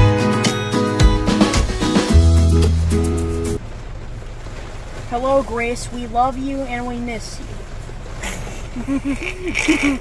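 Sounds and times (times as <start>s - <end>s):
boy's voice: 5.1s - 7.4s.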